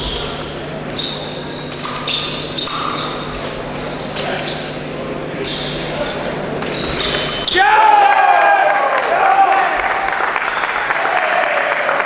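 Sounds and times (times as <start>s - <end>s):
fencing blades clicking: 1.8s - 3.2s
loud long cry: 7.5s - 10.0s.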